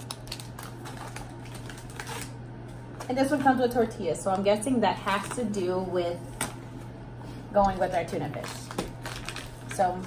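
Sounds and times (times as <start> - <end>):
pouches clicking and crinkling: 0.0 - 3.7, 7.6 - 10.0
low steady hum: 0.0 - 10.0.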